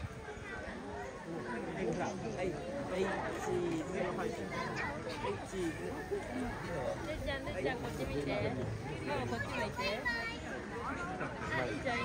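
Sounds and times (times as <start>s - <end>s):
chatter of people talking: 0.0s - 12.0s.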